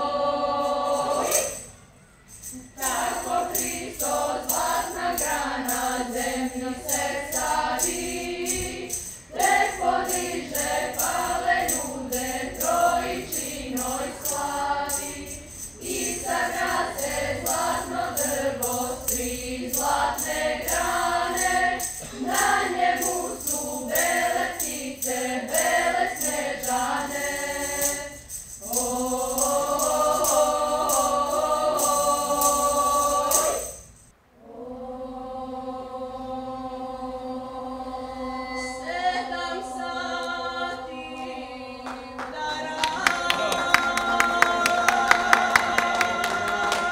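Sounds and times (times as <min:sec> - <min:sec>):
girls' choir singing: 0:00.0 - 0:01.8, 0:02.5 - 0:33.8, 0:34.4 - 0:46.9.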